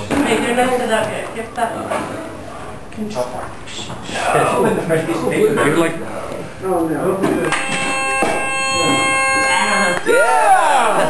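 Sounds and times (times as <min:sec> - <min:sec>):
sustained chord of pitched tones: 0:07.5 - 0:11.0.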